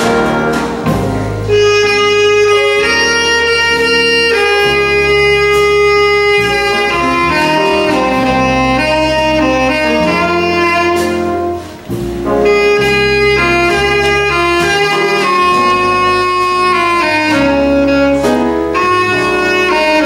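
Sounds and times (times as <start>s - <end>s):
jazz big band ballad: 0.0s - 20.0s.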